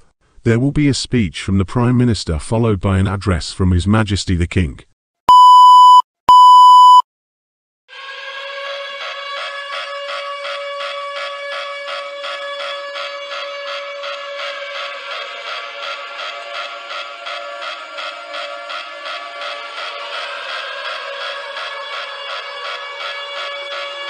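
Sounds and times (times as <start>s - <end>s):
long electronic beeps: 5.3s - 7.0s.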